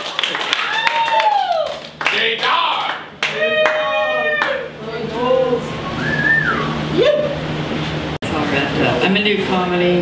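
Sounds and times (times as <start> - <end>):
audience clapping: 0.0 - 4.6.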